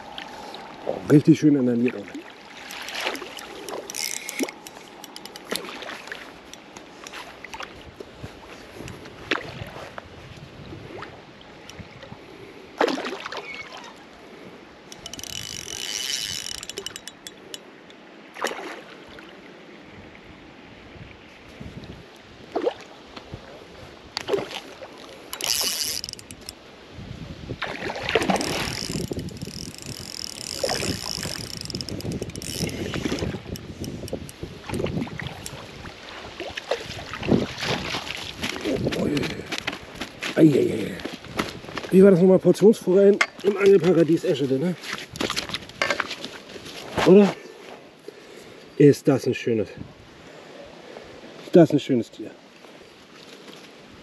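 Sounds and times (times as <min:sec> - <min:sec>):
wind rumbling on microphone: 0:00.0 - 0:01.8, 0:02.4 - 0:12.8, 0:19.8 - 0:24.7, 0:25.4 - 0:42.5, 0:43.2 - 0:47.2, 0:49.7 - 0:50.2
fish splashing at water surface: 0:02.1 - 0:07.7, 0:12.8 - 0:13.9, 0:18.3 - 0:19.3, 0:27.6 - 0:31.8.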